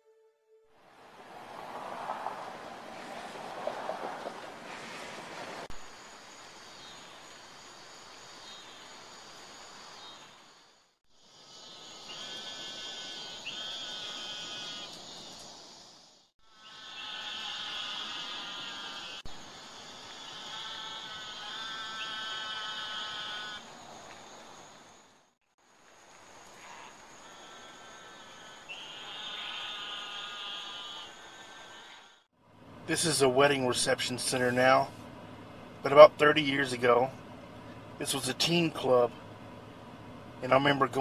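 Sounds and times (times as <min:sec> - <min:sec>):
insects calling: 0:05.7 - 0:32.3.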